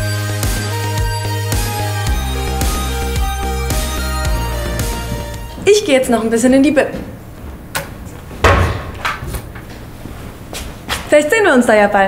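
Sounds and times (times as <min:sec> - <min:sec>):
locker door knocking shut: 0:08.4 - 0:09.2.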